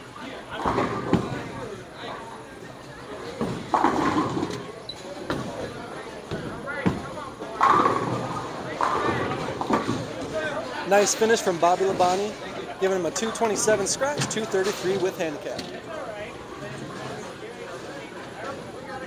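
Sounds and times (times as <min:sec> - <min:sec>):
people talking: 0:00.2 - 0:19.0
bowling balls and pins knocking: 0:03.4 - 0:04.6, 0:06.3 - 0:10.4.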